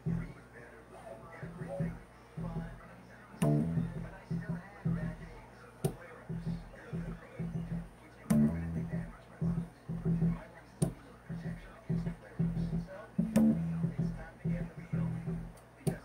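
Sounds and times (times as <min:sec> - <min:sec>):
bass guitar riff: 0:00.0 - 0:00.4, 0:01.4 - 0:02.8, 0:03.4 - 0:05.3, 0:06.3 - 0:10.4, 0:11.3 - 0:15.6.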